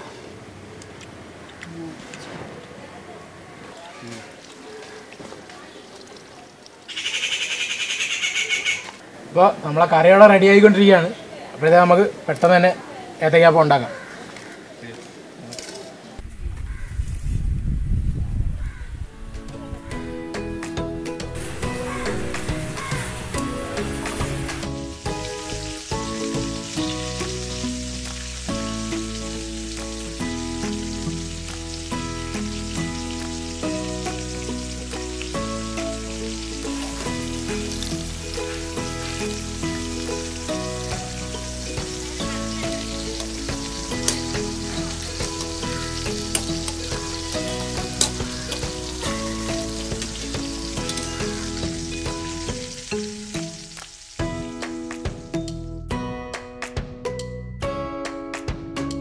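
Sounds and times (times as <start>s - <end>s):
background music with bass: 19.1s - 59.0s
fritters frying in hot oil: 22.0s - 54.3s.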